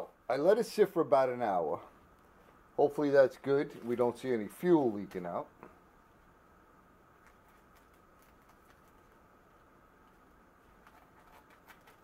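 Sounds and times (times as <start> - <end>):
faint steady hum: 0.0 - 12.0.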